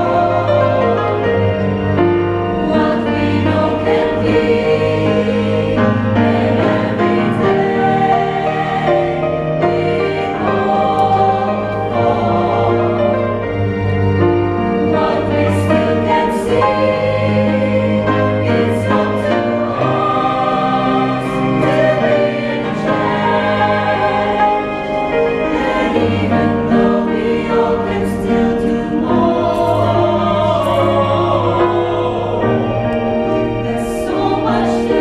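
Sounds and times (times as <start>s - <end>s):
choir singing in parts: 0.0s - 35.0s
piano accompaniment: 0.0s - 35.0s.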